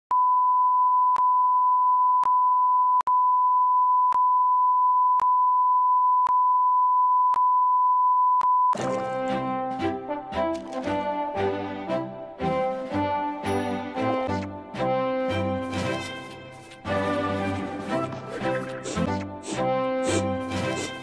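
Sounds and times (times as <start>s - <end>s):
brass-led music: 8.8s - 21.0s.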